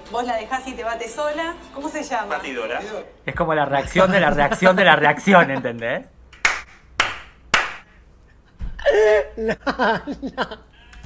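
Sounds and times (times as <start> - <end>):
hand claps: 6.3 - 8.0.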